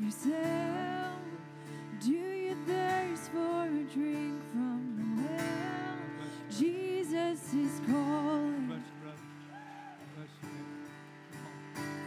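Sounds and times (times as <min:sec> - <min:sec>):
person singing: 0:00.0 - 0:09.3
strummed acoustic guitars: 0:00.0 - 0:12.0.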